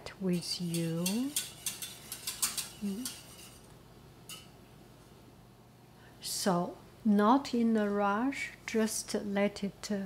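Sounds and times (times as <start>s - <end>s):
utensil clinking against pot: 0.3s - 3.7s, 4.3s - 4.5s.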